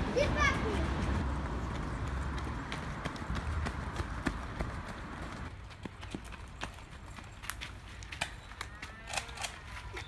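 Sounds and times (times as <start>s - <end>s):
running footsteps on dirt path: 0.4s - 10.0s.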